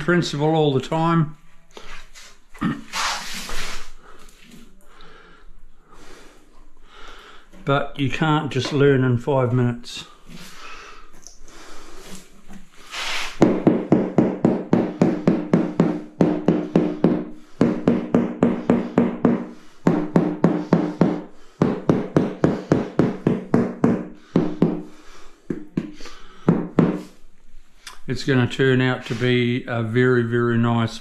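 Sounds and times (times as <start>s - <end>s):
rubber mallet tapping tile: 13.4s - 24.9s.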